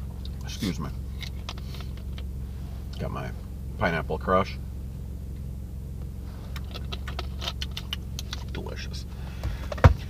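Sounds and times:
car cabin hum: 0:00.0 - 0:10.0.

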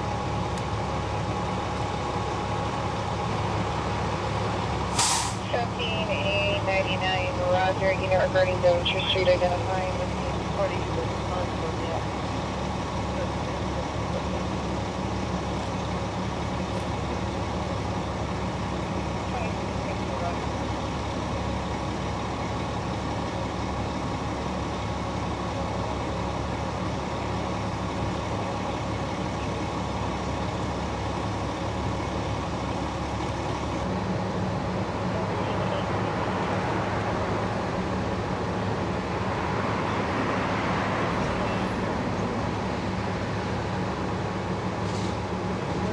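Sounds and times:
diesel engine idling: 0:00.0 - 0:45.9.

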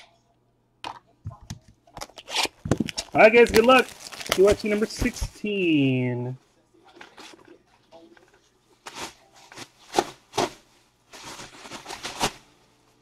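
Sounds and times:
rustling and handling noises: 0:01.3 - 0:06.0, 0:06.8 - 0:13.0.

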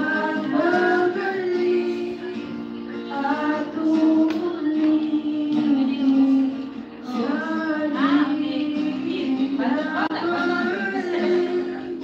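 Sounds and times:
karaoke backing track: 0:00.0 - 0:12.0
person singing into a microphone: 0:00.0 - 0:12.0.

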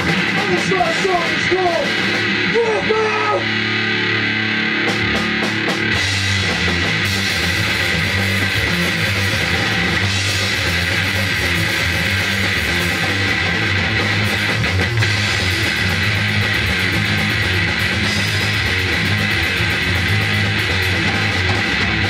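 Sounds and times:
distorted electric guitar bending notes: 0:00.0 - 0:22.0
grindcore band playing: 0:00.0 - 0:22.0.

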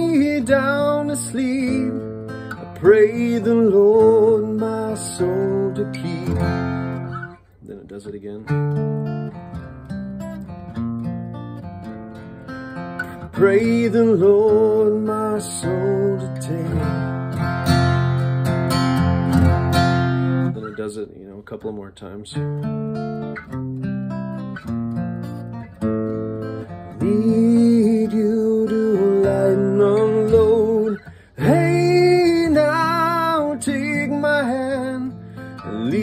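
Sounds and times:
acoustic guitar fingerpicking: 0:00.0 - 0:20.9, 0:22.3 - 0:36.0.

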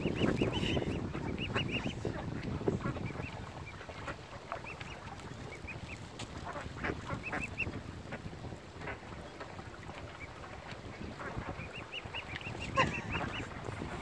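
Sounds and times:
waterbirds calling: 0:00.0 - 0:14.0.

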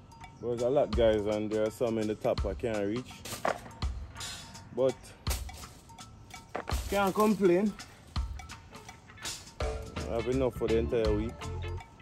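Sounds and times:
pods rustling: 0:02.9 - 0:09.7.

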